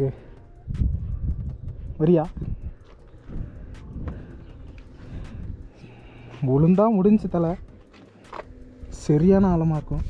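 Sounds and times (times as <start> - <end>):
wind buffeting microphone: 0.0 - 7.8
faint scattered clicks: 2.7 - 6.9.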